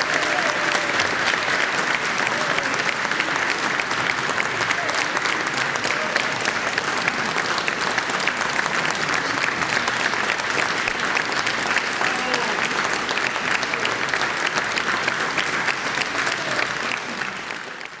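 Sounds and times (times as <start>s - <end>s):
audience applauding: 0.0s - 18.0s.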